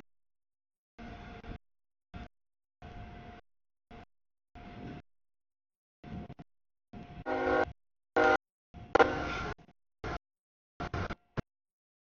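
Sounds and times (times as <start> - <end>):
locomotive horn: 7.2 - 8.4.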